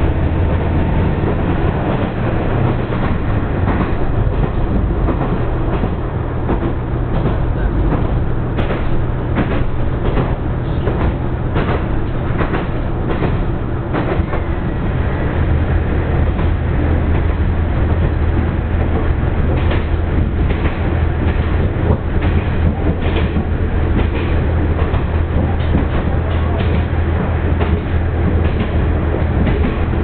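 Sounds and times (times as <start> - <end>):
diesel train engine drone: 0.0 - 30.0
train running noise: 0.0 - 30.0
rail-joint clicks: 0.1 - 14.8, 16.2 - 30.0.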